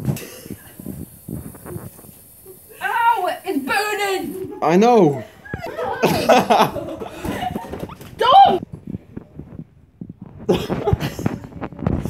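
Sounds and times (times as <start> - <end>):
woman speaking: 2.7 - 4.6, 8.2 - 8.6.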